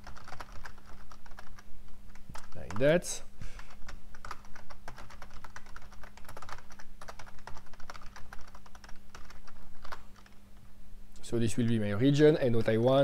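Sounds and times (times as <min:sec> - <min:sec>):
keyboard typing: 0:00.0 - 0:03.0, 0:03.6 - 0:10.4
faint steady hum: 0:00.0 - 0:13.0.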